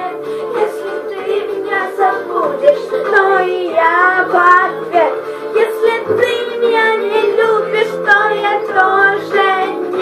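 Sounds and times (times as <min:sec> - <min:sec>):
girl singing pop song: 0:00.0 - 0:10.0
recorded musical accompaniment: 0:00.0 - 0:10.0.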